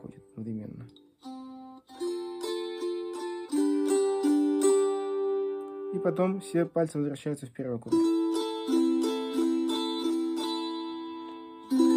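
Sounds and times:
psaltery strummed in chords: 0.0s - 6.7s, 7.9s - 11.9s.

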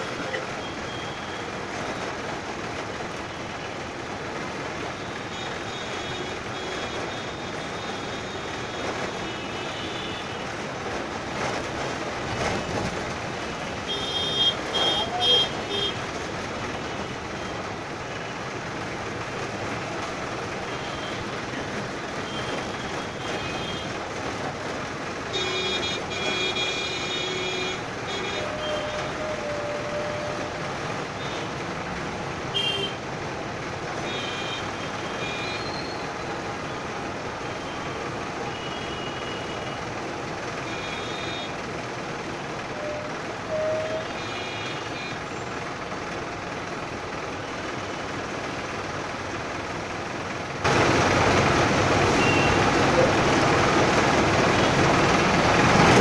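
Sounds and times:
bus engine and road noise: 0.0s - 56.0s
vehicle horns honking: 13.9s - 16.0s, 25.3s - 30.5s, 32.5s - 33.0s, 42.8s - 45.2s, 52.1s - 52.7s.

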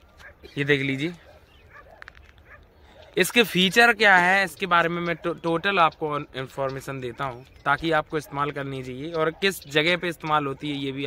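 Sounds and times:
dog barking faintly: 1.1s - 3.4s, 4.9s - 5.9s, 8.1s - 11.0s.

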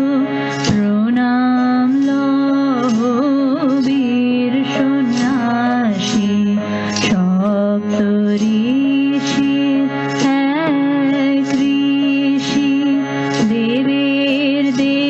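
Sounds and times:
keyboard sustained notes: 0.0s - 15.0s
woman singing: 0.0s - 15.0s.

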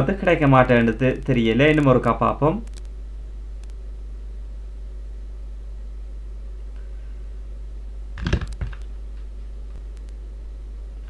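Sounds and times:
steady low hum: 0.0s - 11.0s
keyboard and mouse clicks: 8.2s - 8.9s.

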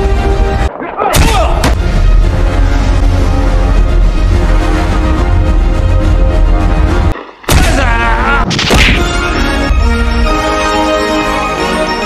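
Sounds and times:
punch sound effects: 7.5s - 9.1s.

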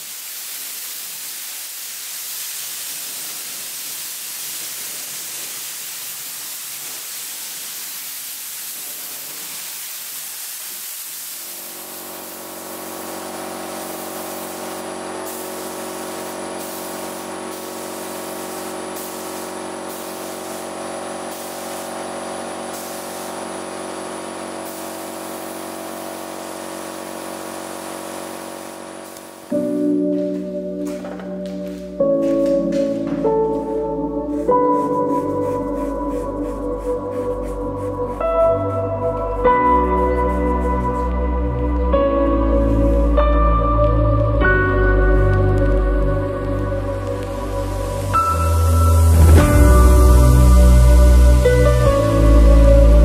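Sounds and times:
spray gun hissing: 0.0s - 31.0s, 31.6s - 43.2s, 43.8s - 53.0s
steady machine hum: 11.4s - 29.6s.

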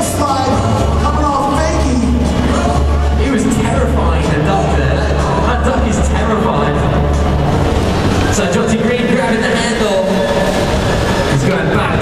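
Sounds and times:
hall din rumble: 0.0s - 12.0s.

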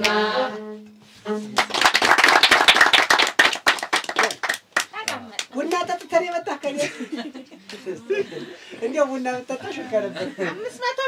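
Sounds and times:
people clapping: 0.0s - 0.2s, 1.4s - 6.6s.

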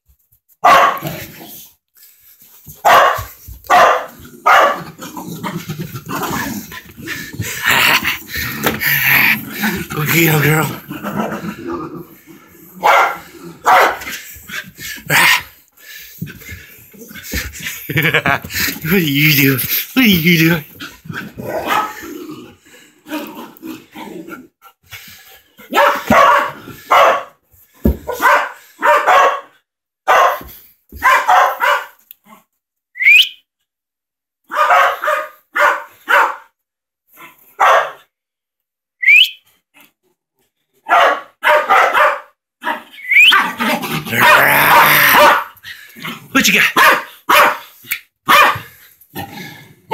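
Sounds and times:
dog barking: 0.6s - 1.2s, 2.8s - 4.9s, 12.8s - 14.1s, 21.6s - 22.0s, 25.7s - 27.4s, 28.0s - 32.0s, 34.5s - 36.5s, 37.6s - 38.1s, 40.8s - 45.6s, 46.7s - 48.7s.

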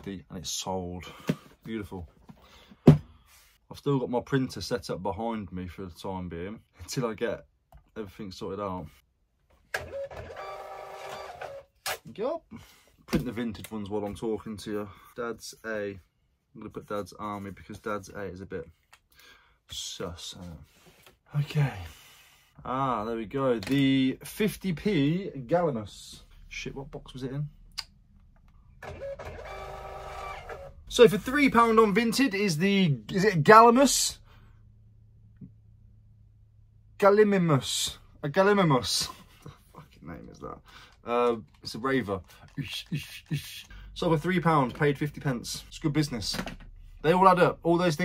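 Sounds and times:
printer motor whine: 9.8s - 11.6s, 28.8s - 30.8s.

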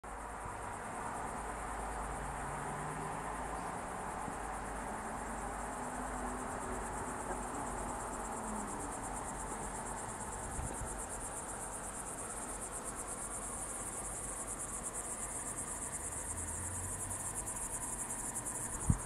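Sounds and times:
crickets trilling: 0.1s - 19.0s.

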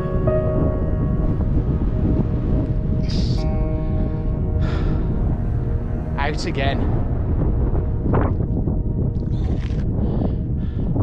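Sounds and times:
sustained background music: 0.0s - 11.0s
wind rumble on microphone: 0.0s - 11.0s.

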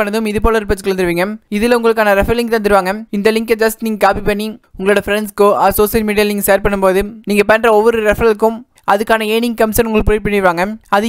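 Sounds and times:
narrator talking: 0.0s - 11.0s.

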